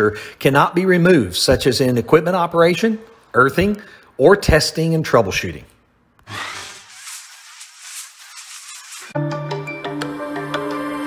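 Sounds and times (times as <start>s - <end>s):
sparks hissing crackle: 6.2s - 9.2s.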